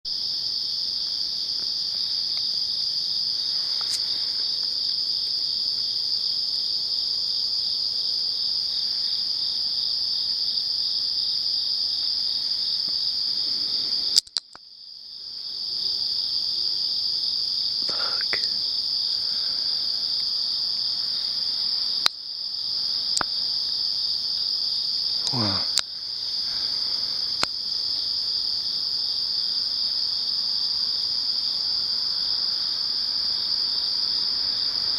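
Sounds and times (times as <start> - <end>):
crickets chirring: 0.1 - 34.9
sharp click: 14.2 - 14.6.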